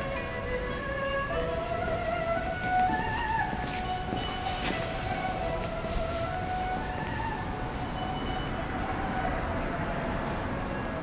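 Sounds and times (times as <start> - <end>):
slow background music: 0.0 - 11.0.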